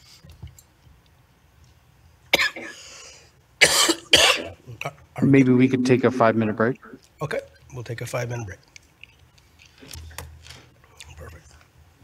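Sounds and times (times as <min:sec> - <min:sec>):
person coughing: 0:03.6 - 0:04.6.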